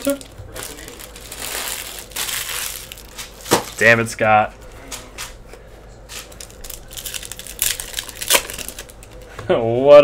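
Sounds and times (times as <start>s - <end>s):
foil wrapper crinkling: 0.0s - 4.1s, 6.1s - 9.3s.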